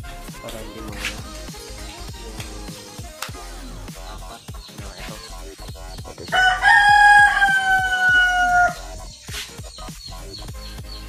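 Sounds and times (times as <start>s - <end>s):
background music with beat: 0.0s - 11.0s
rooster crowing: 6.3s - 9.0s.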